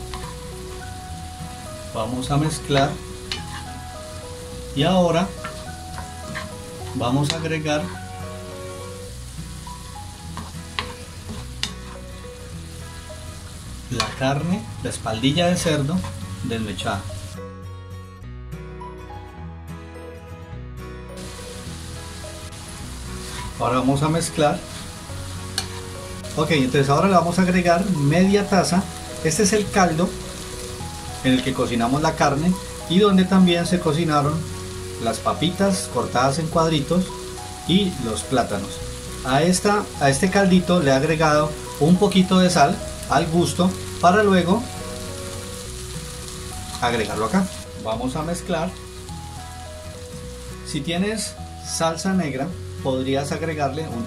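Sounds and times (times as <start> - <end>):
food sizzling in frying pan: 0.0 - 17.4, 21.2 - 54.0
background music: 0.0 - 54.0.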